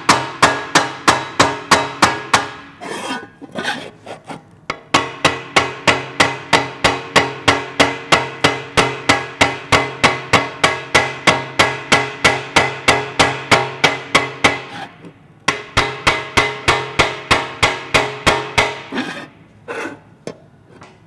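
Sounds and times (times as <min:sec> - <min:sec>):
hammer striking metal pan: 0:00.0 - 0:02.7, 0:04.7 - 0:14.7, 0:15.5 - 0:18.9.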